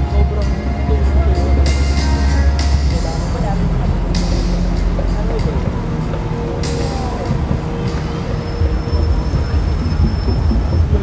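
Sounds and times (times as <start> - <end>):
crowd voices: 0.0 - 11.0
low rumble: 0.0 - 11.0
music over outdoor loudspeakers: 0.0 - 11.0.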